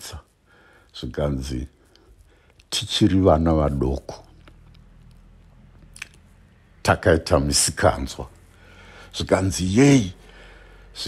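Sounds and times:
man speaking: 0.0 - 0.3, 0.9 - 1.8, 2.7 - 4.4, 6.8 - 8.4, 9.1 - 10.2
low steady hum: 0.0 - 11.0
mouth click: 4.3 - 6.2.

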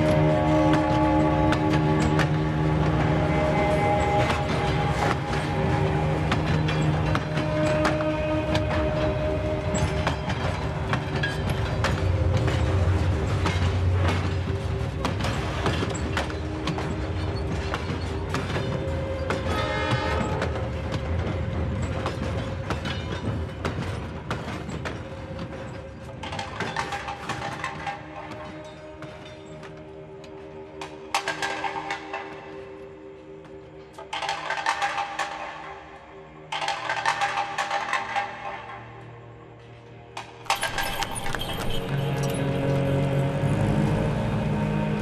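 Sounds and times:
train wheels clicking over rail joints: 0.0 - 32.6
background music: 0.0 - 45.0
passenger train rolling past: 40.5 - 45.0.

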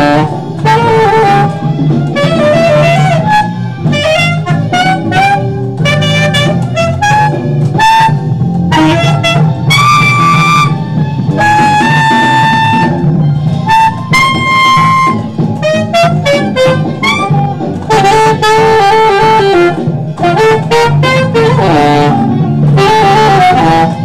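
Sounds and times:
bass and drums backing: 0.0 - 24.0
saxophone jazz melody: 0.0 - 24.0.

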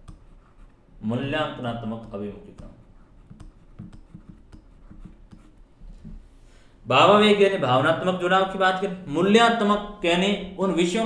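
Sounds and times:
stylus tapping and scratching on tablet: 0.0 - 6.3.

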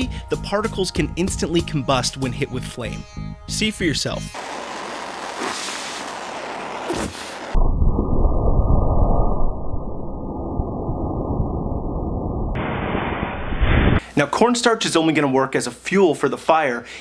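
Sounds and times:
torch flame hissing: 4.4 - 7.6
dust fireball whoosh: 4.4 - 14.0
breath blowing: 5.3 - 6.2.

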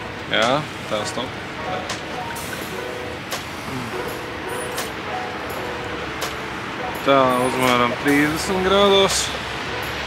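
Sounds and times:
distant traffic rumble and hiss: 0.0 - 10.0.

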